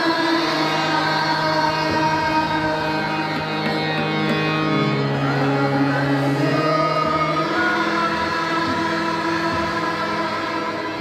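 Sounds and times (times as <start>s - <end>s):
women singing a prayer song: 0.0s - 3.2s, 5.2s - 11.0s
harmonium playing held notes: 0.0s - 11.0s.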